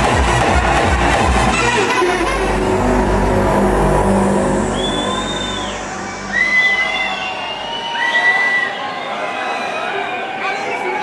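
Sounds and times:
sustained bass and synth chord: 0:00.0 - 0:07.9
crowd whistling: 0:03.5 - 0:10.5.

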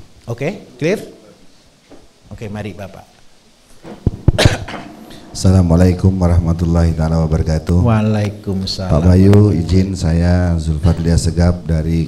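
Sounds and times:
microphone thumps: 0:03.7 - 0:05.4
person coughing: 0:04.3 - 0:05.0.

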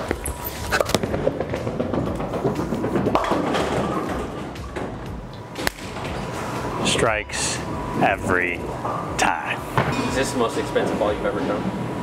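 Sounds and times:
bowling ball rolling rumble: 0:00.0 - 0:05.3
background music: 0:00.1 - 0:10.1
bowling ball thud: 0:00.8 - 0:05.1
bowling pins crashing: 0:00.8 - 0:05.1.

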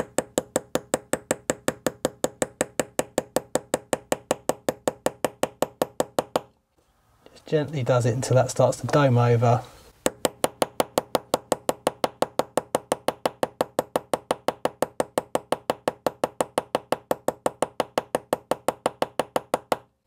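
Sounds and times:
hammer tapping metal tool: 0:00.0 - 0:06.6, 0:10.0 - 0:19.9.

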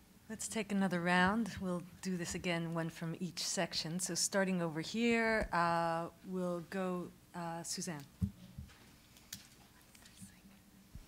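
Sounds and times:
faint whispering: 0:09.6 - 0:10.8.

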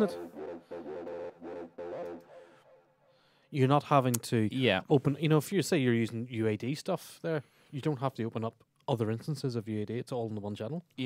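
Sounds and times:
electronic synthesizer music: 0:00.0 - 0:02.6.

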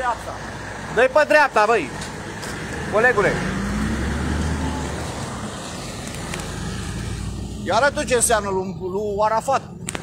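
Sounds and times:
vehicle road noise: 0:00.0 - 0:10.0.

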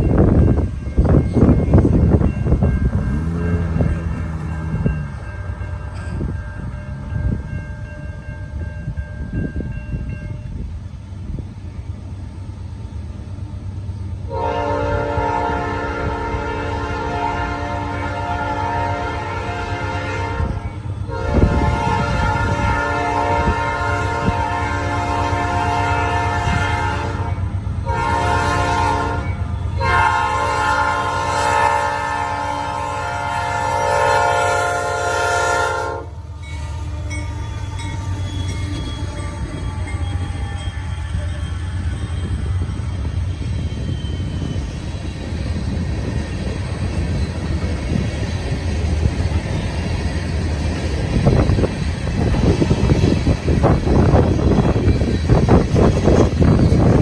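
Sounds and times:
train rumbling: 0:00.0 - 0:57.0
locomotive air horn blasts: 0:14.3 - 0:41.4.

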